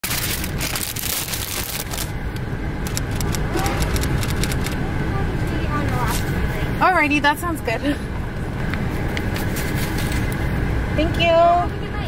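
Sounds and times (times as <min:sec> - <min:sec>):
clicks and crackles: 0:00.0 - 0:04.8
car engine rumble inside cabin: 0:00.0 - 0:12.0.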